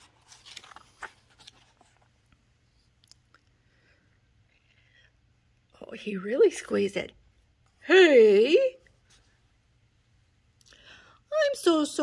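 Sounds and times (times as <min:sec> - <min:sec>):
book page turning: 0:00.0 - 0:02.4.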